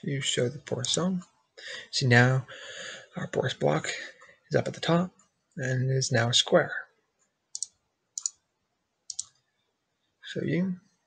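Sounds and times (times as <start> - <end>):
computer mouse clicking: 7.6 - 8.4, 9.1 - 9.4.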